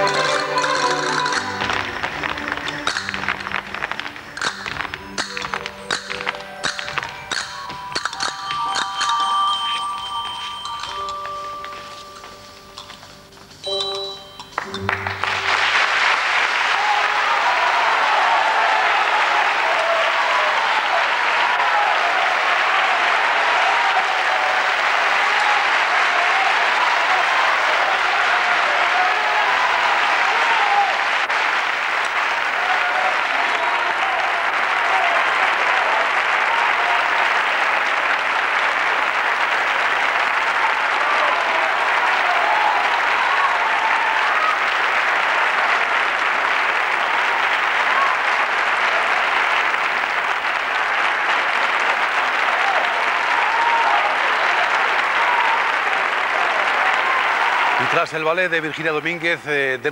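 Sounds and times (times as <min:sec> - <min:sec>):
audience applauding: 0:00.0 - 0:59.9.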